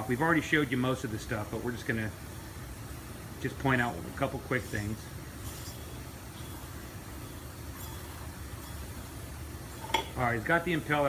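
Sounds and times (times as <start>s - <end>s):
workshop hum: 0.0s - 11.0s.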